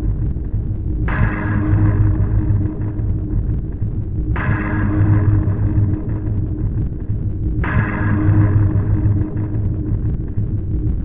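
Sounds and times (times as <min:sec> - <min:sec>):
deep rumbling noise drone: 0:00.0 - 0:11.0
hissing crackling noise: 0:00.0 - 0:11.0
steady hum: 0:00.0 - 0:11.0.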